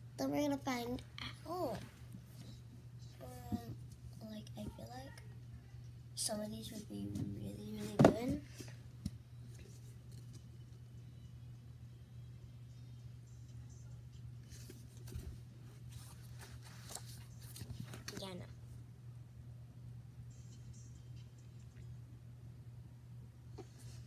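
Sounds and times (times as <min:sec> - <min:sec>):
low room hum: 0:00.0 - 0:24.0
paper rustling: 0:14.5 - 0:18.3.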